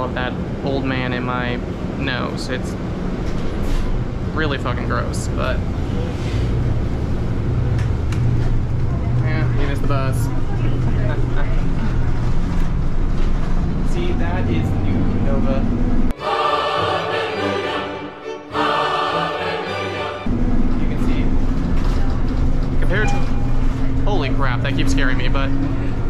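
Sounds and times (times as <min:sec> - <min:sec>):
bus engine hum and road noise: 0:00.0 - 0:16.2, 0:19.5 - 0:26.0
music snippet: 0:16.1 - 0:21.2.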